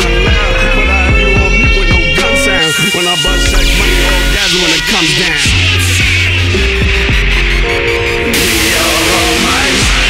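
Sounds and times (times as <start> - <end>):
rapping over a heavy bass beat: 0.0 - 10.0.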